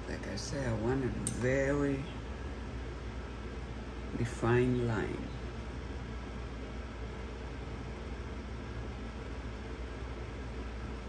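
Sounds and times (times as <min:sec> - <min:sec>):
room tone hum and hiss: 0:00.0 - 0:11.0.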